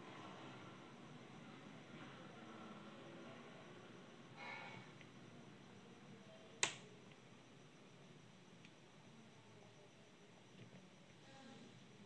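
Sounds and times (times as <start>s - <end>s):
faint background noise: 0.0s - 12.0s
sharp click: 6.6s - 6.8s.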